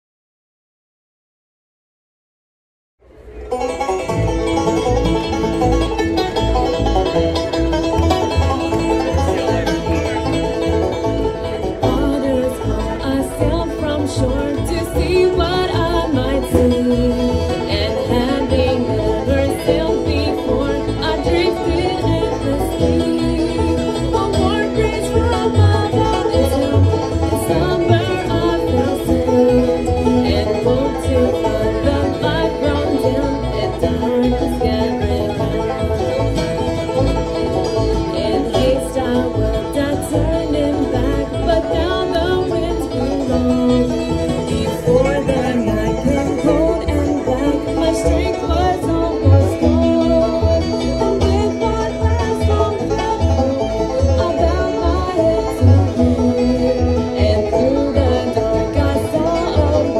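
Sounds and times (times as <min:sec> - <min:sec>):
banjo rolls: 0:03.0 - 0:59.9
fiddle: 0:03.0 - 0:59.9
upright bass: 0:03.1 - 0:59.9
strummed acoustic guitar: 0:03.6 - 0:59.9
woman singing: 0:11.8 - 0:36.2, 0:38.0 - 0:53.4, 0:54.1 - 0:59.9.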